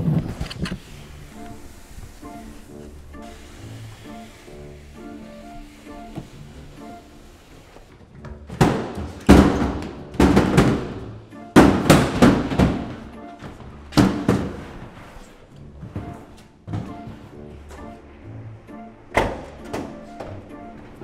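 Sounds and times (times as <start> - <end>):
quiet background music: 0.0 - 21.0
plastic bins thudding on stairs: 8.1 - 15.0, 15.8 - 17.9.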